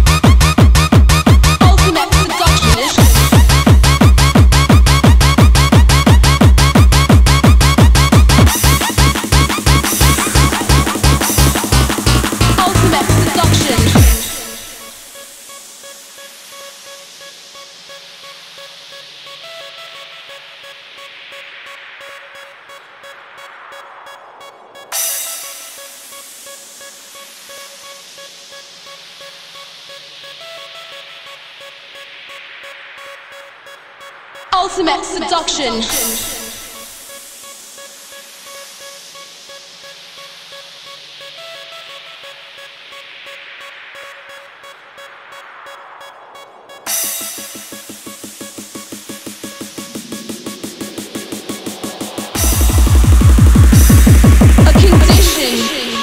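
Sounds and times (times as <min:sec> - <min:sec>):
kick drum pounding: 0:00.2 - 0:01.8, 0:03.0 - 0:08.5, 0:52.4 - 0:55.4
rising hissing noise sweep: 0:14.4 - 0:34.6, 0:36.4 - 0:54.7
noise wash: 0:42.3 - 0:56.0.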